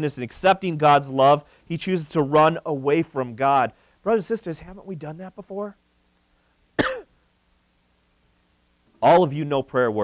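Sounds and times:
man clearing throat: 6.8s - 7.1s.

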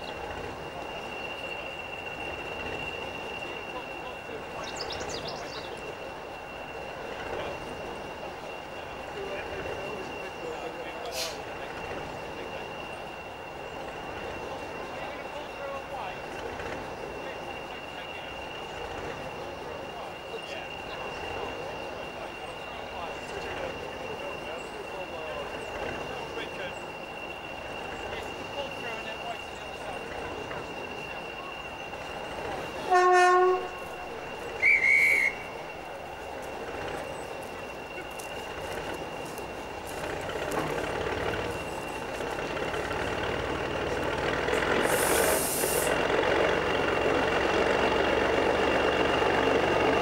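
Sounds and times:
diesel locomotive engine idling: 0.0s - 50.0s
brief hiss: 11.1s - 11.5s, 44.8s - 46.0s
locomotive horn blast: 32.8s - 35.7s
shrill whistle note: 32.8s - 35.8s.

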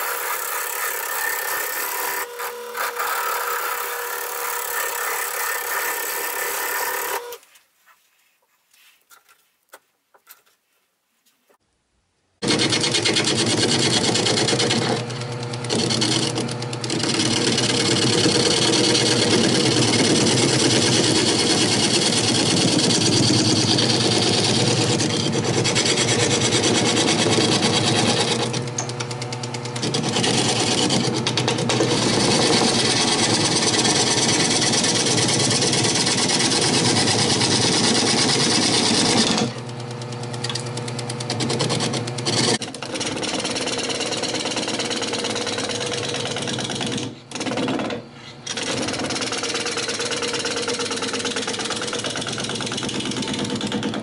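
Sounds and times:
gouge cutting wood on lathe: 0.0s - 7.4s, 12.4s - 46.2s
lathe motor hum: 0.0s - 7.4s.

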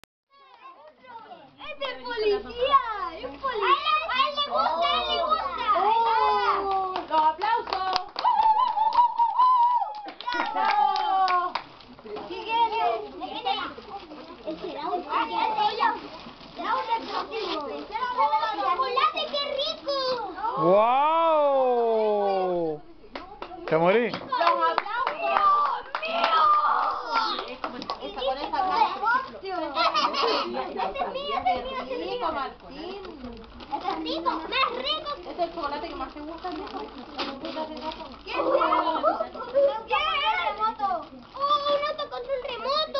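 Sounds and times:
children chattering: 0.3s - 42.9s
group hand clapping: 6.6s - 11.8s, 23.1s - 28.6s.

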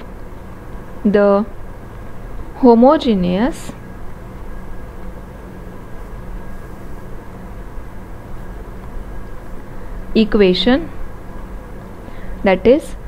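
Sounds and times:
faint constant hum: 0.0s - 13.0s.

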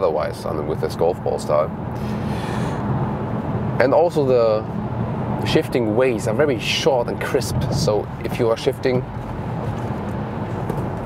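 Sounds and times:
car engine hum: 0.0s - 11.0s
tyre and wind noise: 7.4s - 11.0s.

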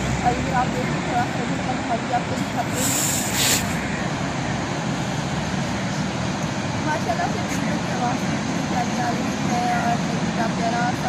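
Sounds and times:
brief hiss: 2.7s - 3.8s.

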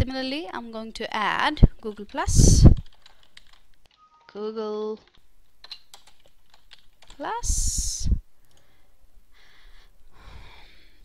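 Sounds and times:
typing on computer keyboard: 1.8s - 4.0s, 5.0s - 7.3s.

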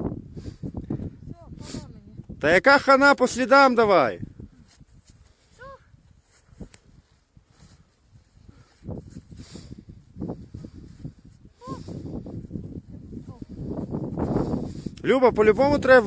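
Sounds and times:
wind rumble on microphone: 0.0s - 2.7s, 3.9s - 16.0s
footsteps crunching on snow: 4.6s - 11.5s.

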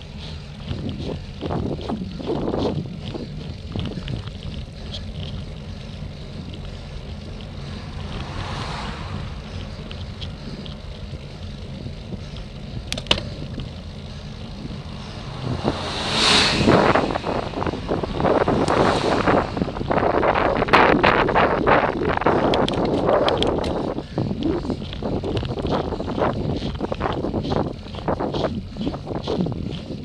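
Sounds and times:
wind buffeting microphone: 0.0s - 30.0s
coach passing close by: 7.4s - 11.0s, 14.4s - 21.4s.

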